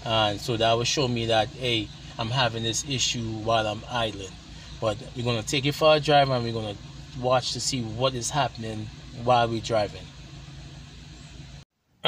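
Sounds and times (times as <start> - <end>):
car engine idling: 0.0 - 11.6.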